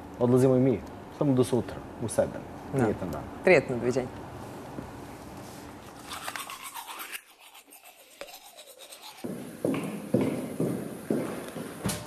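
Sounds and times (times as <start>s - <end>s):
scratchy rasping noise: 5.8s - 9.3s
footsteps on tiled floor: 9.2s - 12.0s.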